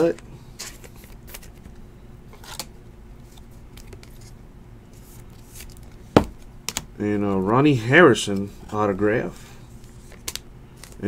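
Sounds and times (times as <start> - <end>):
low steady hum: 0.0 - 11.0
cards rustling and sliding: 2.4 - 6.1, 9.8 - 11.0.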